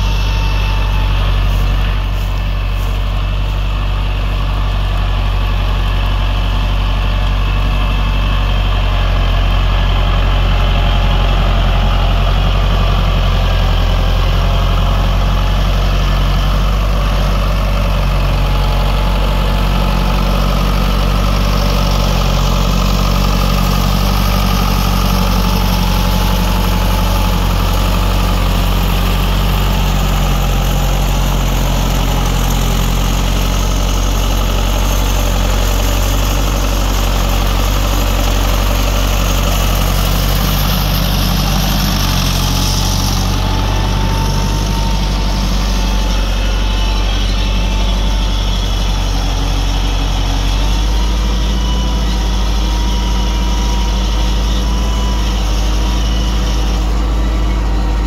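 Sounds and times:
tractor diesel engine under load: 0:00.0 - 0:58.0.

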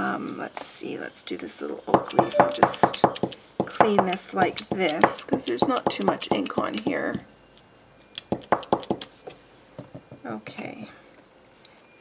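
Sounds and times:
stamp tapping on paper: 0:02.0 - 0:07.0.

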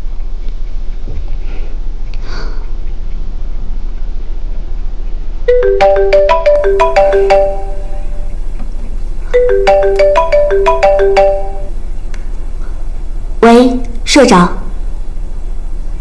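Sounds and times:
mobile phone ringtone: 0:05.5 - 0:08.4, 0:09.3 - 0:11.8.

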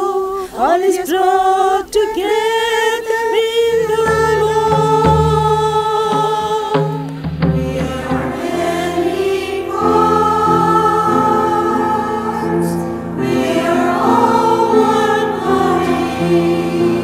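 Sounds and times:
choir singing a hymn: 0:00.0 - 0:17.0.

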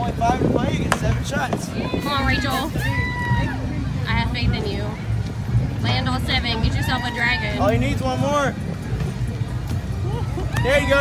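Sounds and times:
outdoor crowd rumble: 0:00.0 - 0:11.0
people talking nearby: 0:00.0 - 0:11.0.

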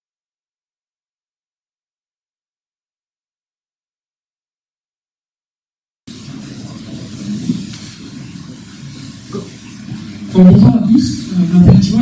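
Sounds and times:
room noise hiss: 0:06.1 - 0:12.0.

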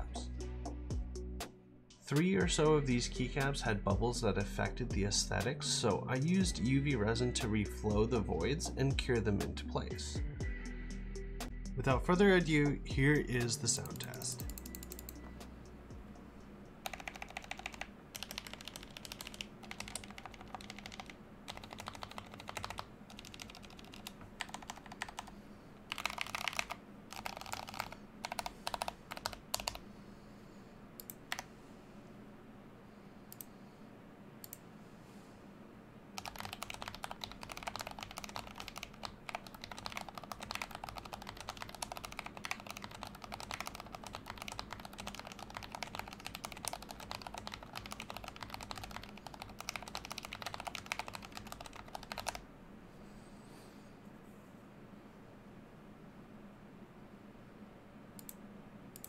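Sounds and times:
mechanical keyboard typing: 0:13.8 - 0:15.2, 0:16.8 - 0:25.3, 0:25.9 - 0:29.8, 0:31.0 - 0:31.5, 0:36.2 - 0:52.4.

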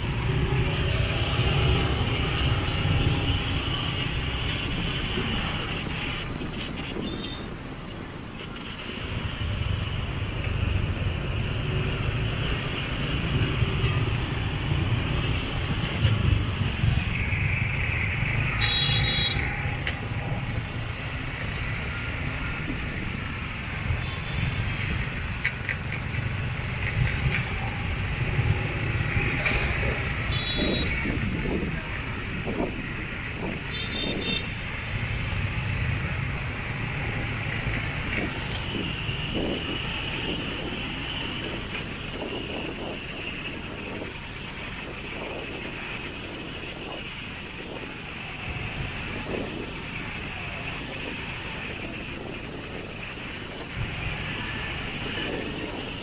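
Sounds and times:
scooter engines rumbling: 0:08.4 - 0:56.0.

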